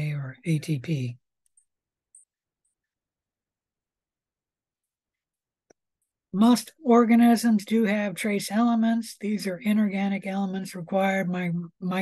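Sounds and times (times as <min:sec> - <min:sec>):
person speaking: 0:00.0 - 0:02.3, 0:06.3 - 0:12.0.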